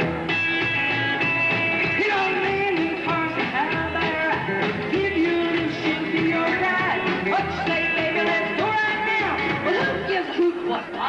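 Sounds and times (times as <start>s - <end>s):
rockabilly band playing: 0.0s - 11.0s
woman singing: 1.8s - 11.0s.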